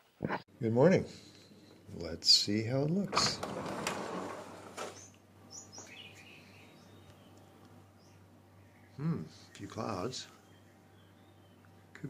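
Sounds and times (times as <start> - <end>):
bird chirps: 4.9 - 9.6, 10.4 - 11.7.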